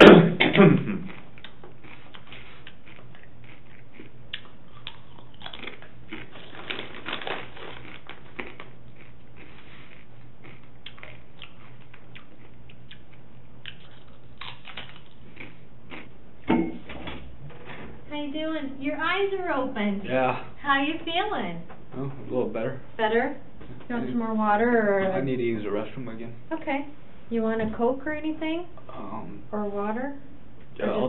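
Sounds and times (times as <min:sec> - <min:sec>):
room hum: 0:00.0 - 0:31.0
chips crunching: 0:01.1 - 0:16.1
chip bag crinkling: 0:04.8 - 0:09.5
loud thump: 0:16.5 - 0:17.1.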